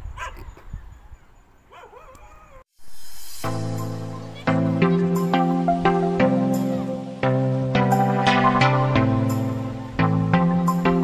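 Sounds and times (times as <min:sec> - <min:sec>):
distant dog barking: 0:00.1 - 0:00.6, 0:01.7 - 0:02.6
background music: 0:03.1 - 0:11.0.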